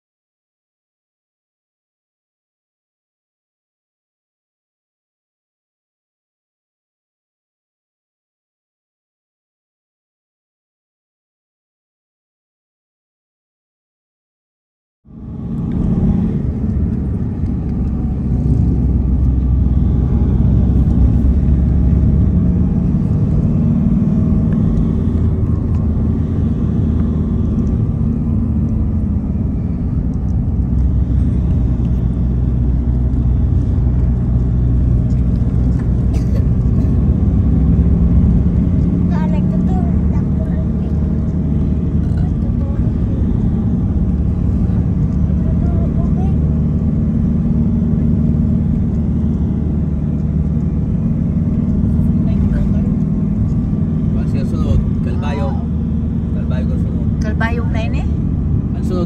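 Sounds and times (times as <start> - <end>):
vehicle engine and road rumble: 15.0 - 59.0.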